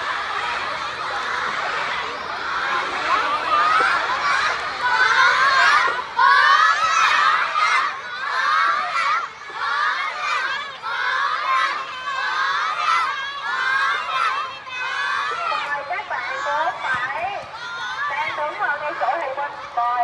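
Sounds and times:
children shouting and cheering: 0.0s - 20.0s.

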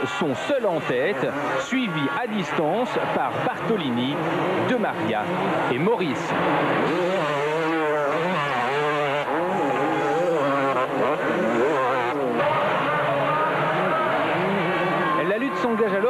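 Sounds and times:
motocross bike engines revving: 0.0s - 16.0s.

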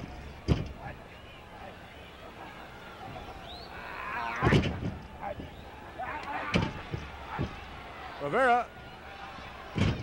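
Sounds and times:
crowd yelling and jeering: 0.8s - 10.0s
thuds in wrestling ring: 9.8s - 10.0s.

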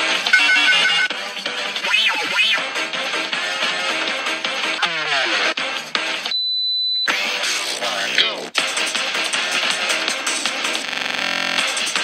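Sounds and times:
high-pitched beep: 0.3s - 1.1s.

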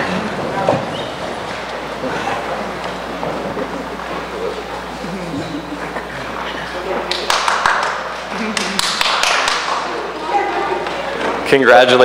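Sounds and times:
murmur of voices in a hall: 0.0s - 12.0s.

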